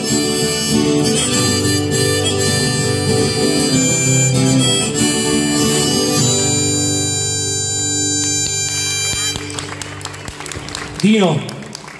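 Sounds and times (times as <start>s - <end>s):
harmonica and acoustic guitar chord: 0.0s - 10.0s
people clapping: 8.8s - 11.9s.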